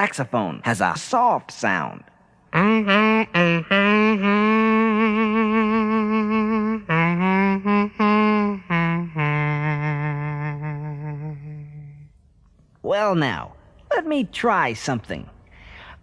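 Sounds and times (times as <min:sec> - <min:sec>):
man imitating a saxophone: 0:02.5 - 0:12.1.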